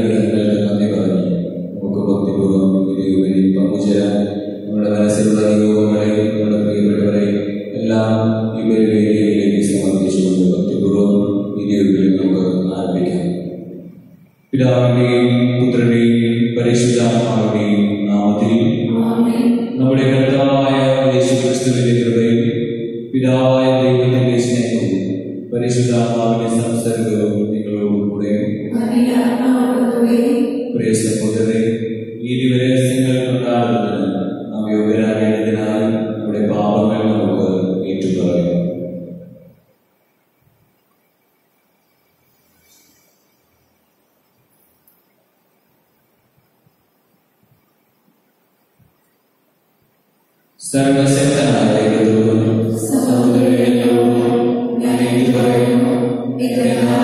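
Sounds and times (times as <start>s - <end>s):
man chanting into a microphone: 0.0s - 13.4s, 14.5s - 19.1s, 19.8s - 28.7s, 30.8s - 38.8s, 50.6s - 57.0s.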